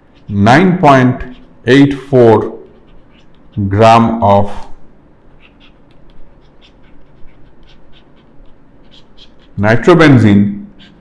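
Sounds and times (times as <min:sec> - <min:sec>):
low room hum: 0:00.0 - 0:11.0
stylus scratching on tablet: 0:00.0 - 0:11.0.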